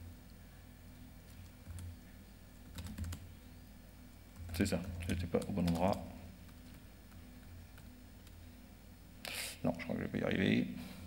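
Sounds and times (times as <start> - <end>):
laptop keyboard typing: 2.6 - 3.2, 4.4 - 8.4.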